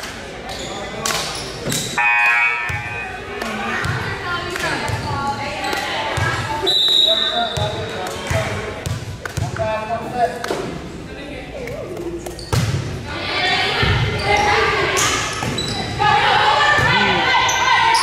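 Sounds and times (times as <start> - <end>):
spectators chattering: 0.0 - 18.0
referee's whistle blast: 2.0 - 3.2.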